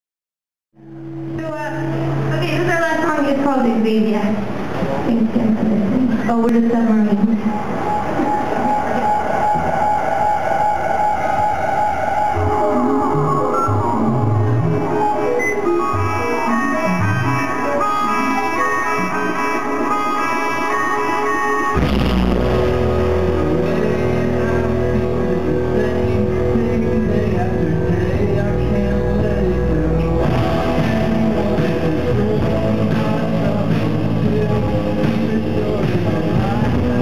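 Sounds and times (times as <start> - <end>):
electric guitar: 0.8 - 37.0
reed instrument melody: 7.2 - 36.6
band with bass and drums: 7.3 - 37.0.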